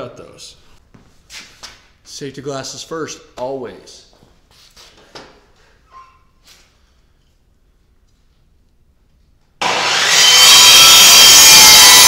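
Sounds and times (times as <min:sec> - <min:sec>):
faint squeak: 0:05.8 - 0:06.7.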